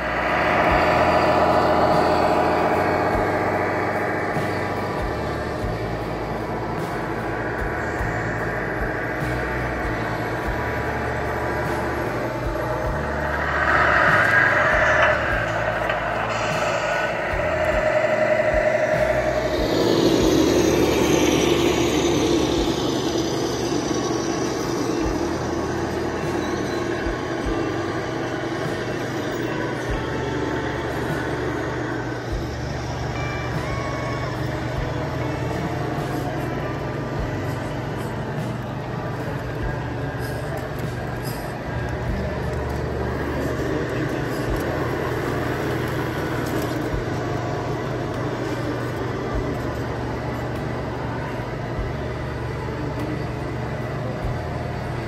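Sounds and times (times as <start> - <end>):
simulated diesel engine running: 0.0 - 55.0
air brake hiss: 11.6 - 22.7.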